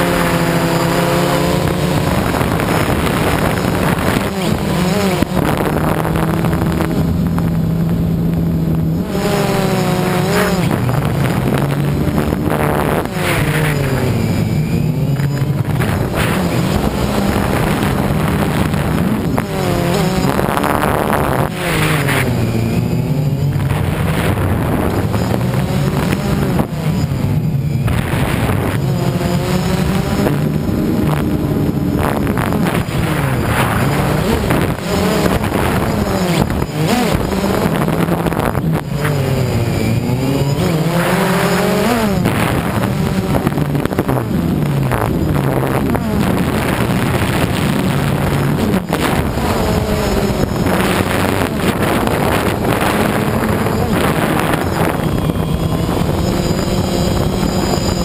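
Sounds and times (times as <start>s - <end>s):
drone propellers buzzing: 0.0s - 58.0s.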